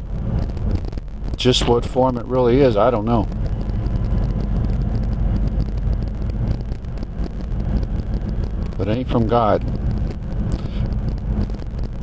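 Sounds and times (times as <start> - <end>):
faint hum: 0.0 - 12.0
low rumble: 0.0 - 12.0.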